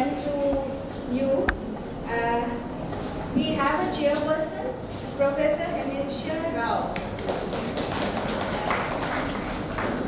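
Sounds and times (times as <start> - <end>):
woman speaking: 0.0 - 2.7, 3.3 - 7.0.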